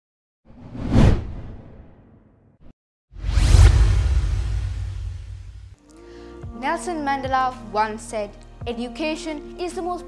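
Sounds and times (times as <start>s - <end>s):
whoosh sound effects: 0.5s - 2.3s, 3.2s - 5.7s.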